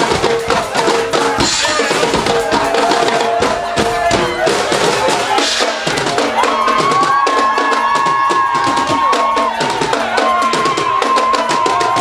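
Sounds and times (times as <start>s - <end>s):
drums steady beat: 0.0s - 12.0s.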